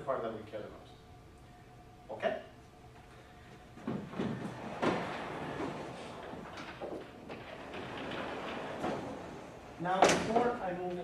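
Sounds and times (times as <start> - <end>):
sliding chalkboard panel rumbling: 3.8 - 10.6.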